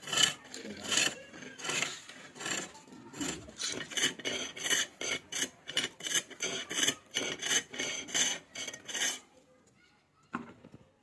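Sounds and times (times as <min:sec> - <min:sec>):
chisel scraping spinning wood: 0:00.0 - 0:09.3.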